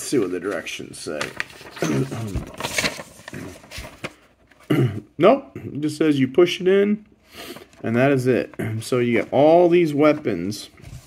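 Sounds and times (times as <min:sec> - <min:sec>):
paper leaflet rustling: 0:00.0 - 0:04.7, 0:07.6 - 0:11.0.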